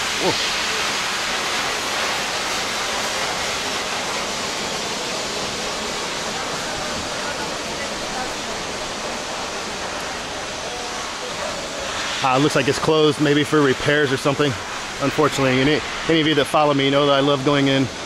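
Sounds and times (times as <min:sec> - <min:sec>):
power washers spraying water: 0:00.0 - 0:18.0.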